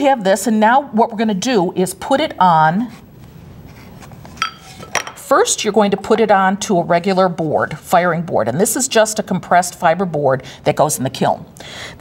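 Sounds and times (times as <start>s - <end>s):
hard object clinking: 4.4s - 5.2s.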